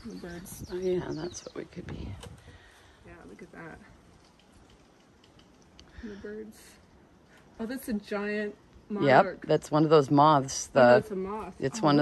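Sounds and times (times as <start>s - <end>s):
distant bird chirps: 0.0s - 2.8s
faint forest ambience: 0.0s - 12.0s.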